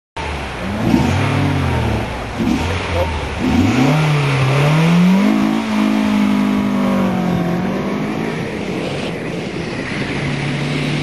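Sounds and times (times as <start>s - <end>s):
car engine revving: 0.2s - 11.0s.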